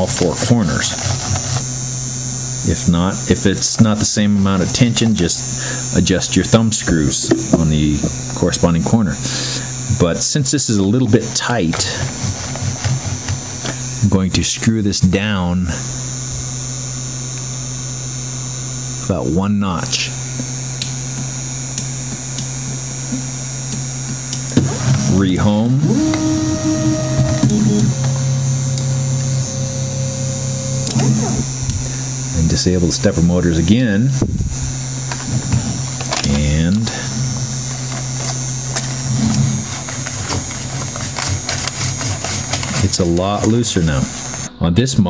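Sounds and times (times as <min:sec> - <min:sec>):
electrical hum: 0:00.0 - 0:45.0
faint high whine: 0:00.0 - 0:45.0.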